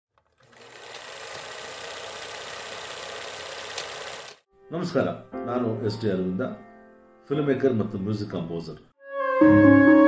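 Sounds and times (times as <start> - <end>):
film projector clattering: 0.2 - 4.4.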